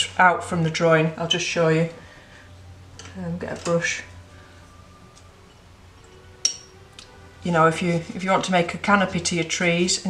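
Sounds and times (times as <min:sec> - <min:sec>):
faint room hum: 0:00.0 - 0:10.0
paintbrush clinking against tools: 0:05.5 - 0:06.8.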